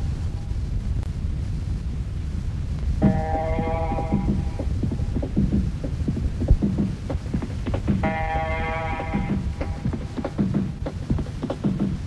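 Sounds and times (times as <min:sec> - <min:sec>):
deep bass line: 0:02.9 - 0:12.0
drum hits: 0:03.0 - 0:12.0.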